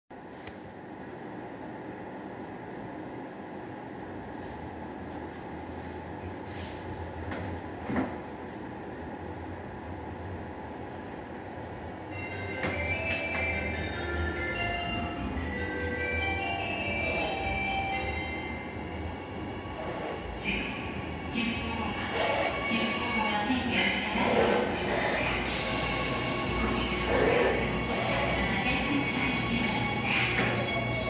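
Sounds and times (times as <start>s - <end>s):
train running on steel rails: 3.8s - 31.0s.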